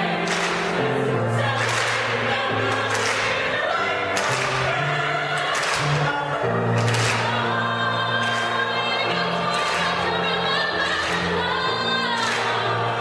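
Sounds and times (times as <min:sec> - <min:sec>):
mixed choir singing: 0:00.0 - 0:13.0.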